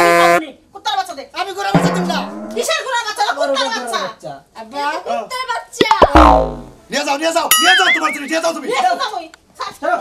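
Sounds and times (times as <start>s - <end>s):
deep low thud: 1.8s - 2.7s
downward-gliding twang: 1.8s - 2.8s
warbling whistle effect: 7.5s - 8.3s.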